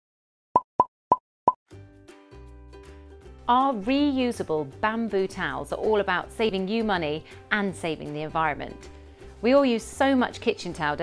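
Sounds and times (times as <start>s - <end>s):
soft background music: 1.7s - 11.0s.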